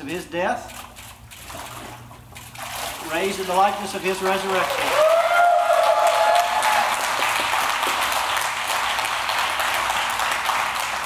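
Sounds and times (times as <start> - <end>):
congregation applauding: 4.4 - 11.0
long held cheer: 4.6 - 7.5.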